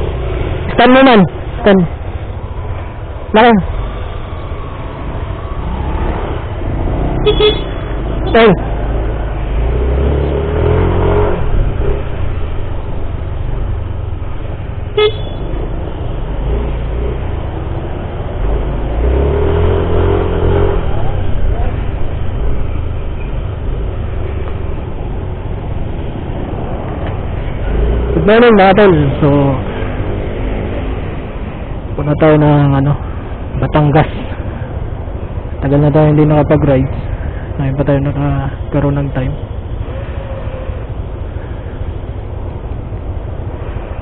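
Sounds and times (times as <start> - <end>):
road noise: 0.0 - 44.0
scooter horn toot: 7.2 - 7.9, 15.0 - 15.5.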